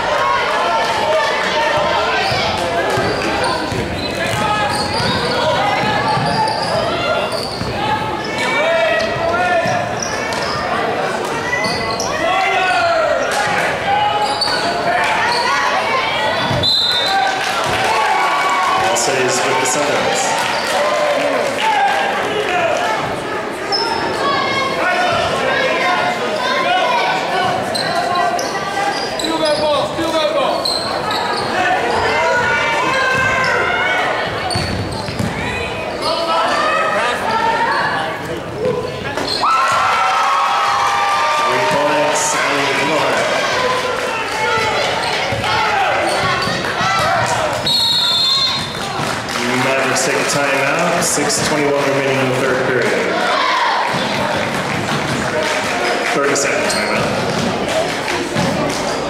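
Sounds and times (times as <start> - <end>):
voices of players and spectators: 0.0 - 59.0.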